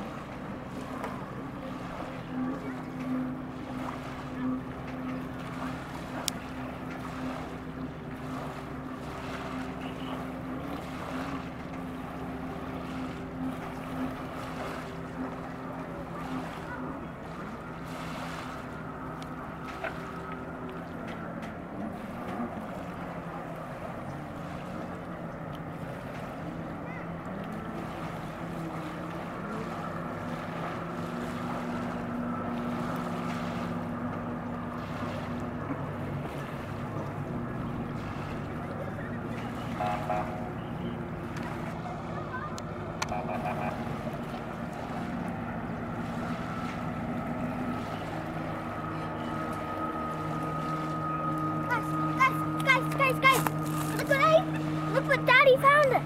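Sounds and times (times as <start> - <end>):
motorboat engines droning: 0.0 - 56.0.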